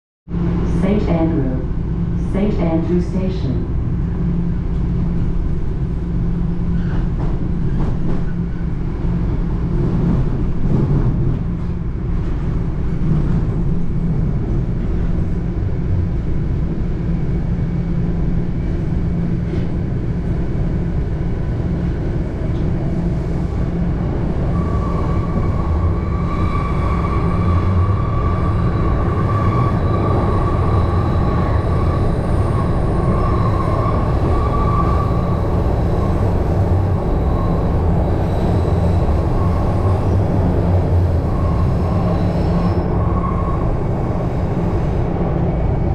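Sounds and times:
subway train rumbling in tunnel: 0.3 - 45.9.

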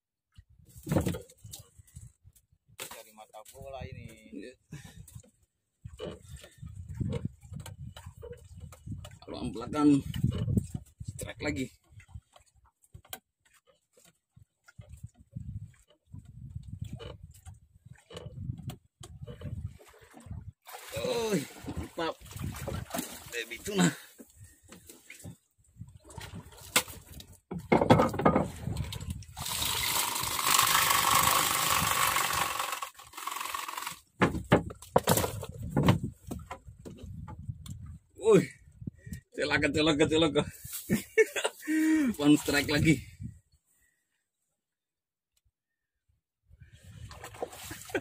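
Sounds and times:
knocks and thumps in a boat: 0.4 - 32.4, 33.7 - 40.3, 46.9 - 48.0
water splashes: 19.2 - 27.4, 28.5 - 34.0, 46.9 - 48.0.

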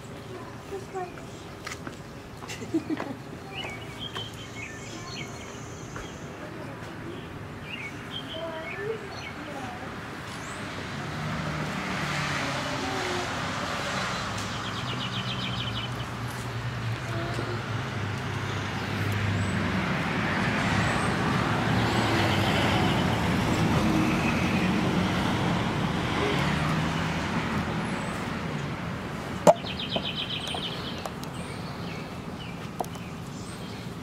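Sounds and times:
traffic engine hum and tyre noise: 0.0 - 34.0.

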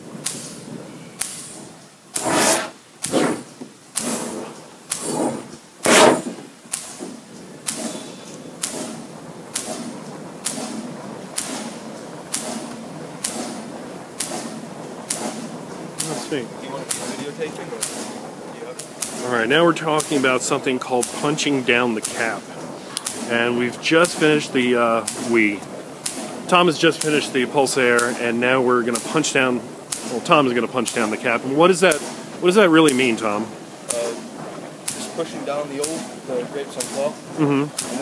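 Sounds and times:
short sharp air pulses: 0.2 - 38.0
air bubbles bursting through liquid: 1.2 - 35.2.

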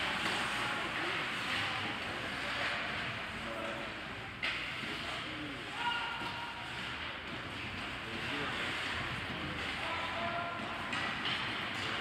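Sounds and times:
skates scraping ice: 0.0 - 12.0.

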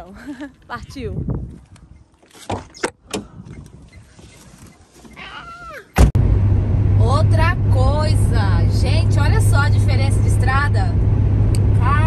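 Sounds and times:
car driving drone from inside cabin: 6.0 - 12.0.

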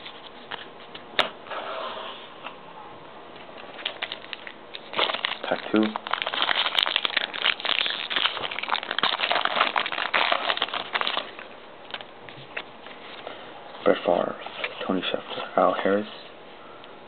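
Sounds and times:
wrapper crinkling: 3.7 - 12.6.

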